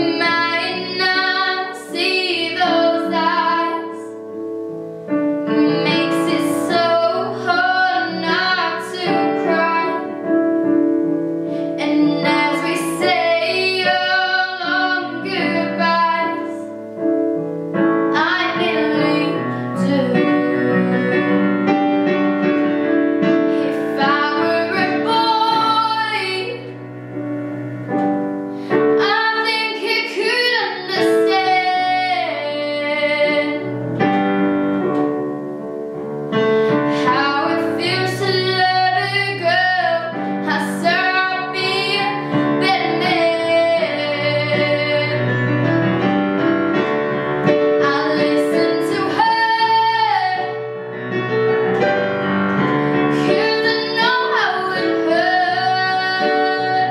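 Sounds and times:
girl singing a pop song: 0:00.0 - 0:04.2, 0:05.4 - 0:10.8, 0:11.5 - 0:17.0, 0:18.1 - 0:21.7, 0:23.5 - 0:26.8, 0:28.6 - 0:34.1, 0:36.6 - 0:45.6, 0:47.8 - 0:50.6, 0:53.1 - 0:56.9
instrumental backing of held chords: 0:00.0 - 0:56.9.

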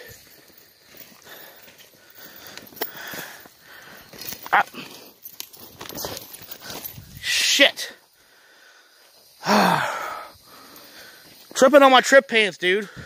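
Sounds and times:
footsteps on dirt path: 0:00.0 - 0:08.2, 0:10.4 - 0:11.7.

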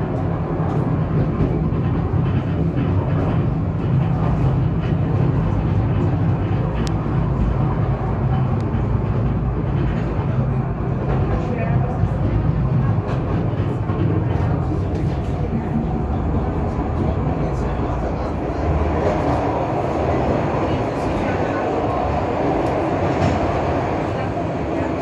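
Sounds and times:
funicular car rolling rumble: 0:00.0 - 0:25.0.

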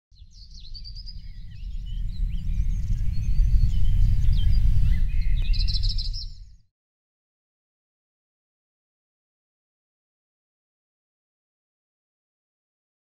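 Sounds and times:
birds chirping and whistling: 0:00.2 - 0:06.6
loud low rumble: 0:01.1 - 0:05.9.

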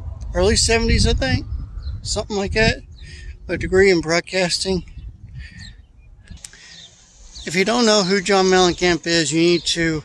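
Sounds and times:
low street rumble: 0:00.0 - 0:10.0
faint bird chirps: 0:04.8 - 0:10.0.

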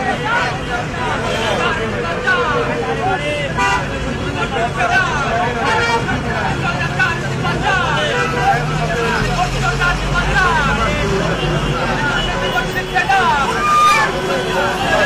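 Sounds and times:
large vehicle engine humming: 0:00.0 - 0:15.0
men talking at once: 0:00.0 - 0:15.0.

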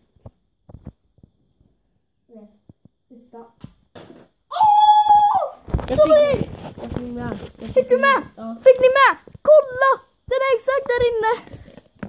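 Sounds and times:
child yelling: 0:04.5 - 0:06.4.

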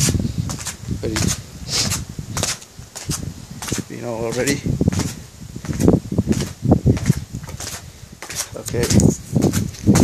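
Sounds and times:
footsteps on stairs: 0:00.0 - 0:10.0.

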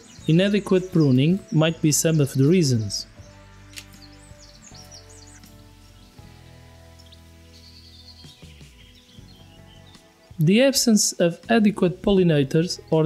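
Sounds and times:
faint bird chirps: 0:00.0 - 0:10.4
background music of held chords: 0:00.0 - 0:13.0.

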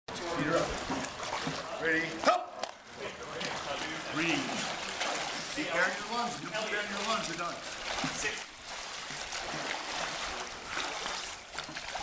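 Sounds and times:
pool water sloshing: 0:00.1 - 0:12.0
voices talking: 0:01.5 - 0:08.5
man calling out: 0:01.8 - 0:02.6, 0:05.9 - 0:08.5.

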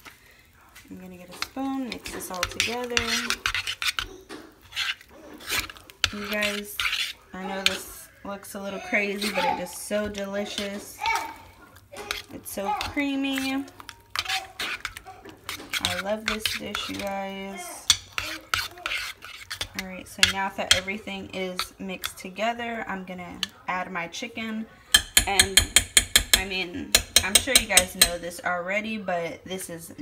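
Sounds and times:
metal utensil stirring thick mixture: 0:00.7 - 0:23.8, 0:24.9 - 0:28.2
fork scraping a pot: 0:01.3 - 0:22.2.

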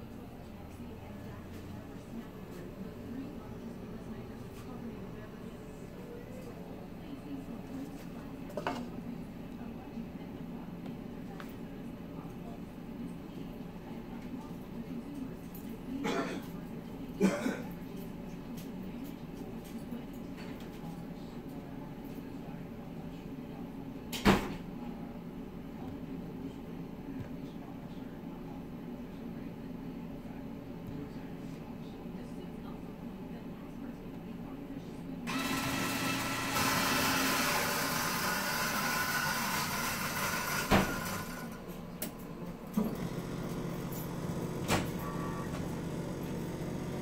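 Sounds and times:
coffee machine grinder whirring: 0:35.3 - 0:41.6, 0:42.8 - 0:47.0.

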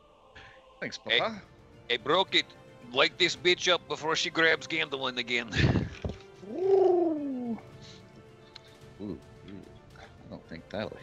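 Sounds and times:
faint background music: 0:00.0 - 0:11.0
person going ooh: 0:06.4 - 0:07.6.

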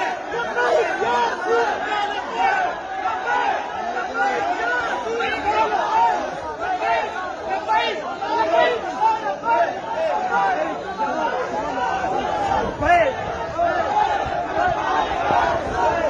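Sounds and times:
crowd of men talking: 0:00.0 - 0:16.0.

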